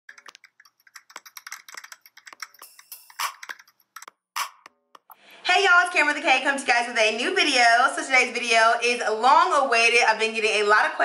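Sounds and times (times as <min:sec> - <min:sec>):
keyboard key clicks: 0:00.1 - 0:05.2.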